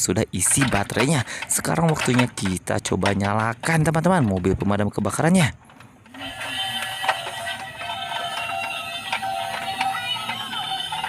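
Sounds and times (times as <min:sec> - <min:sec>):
toy playing electronic song: 0:06.1 - 0:11.0.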